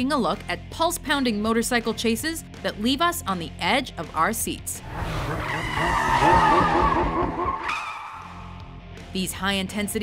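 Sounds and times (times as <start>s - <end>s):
film score music: 1.3s - 10.0s
tyres skidding: 4.8s - 8.5s.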